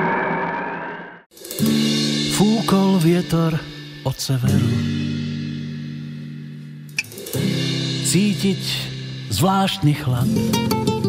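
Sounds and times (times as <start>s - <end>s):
guitar and bass chord ringing: 1.6s - 11.0s.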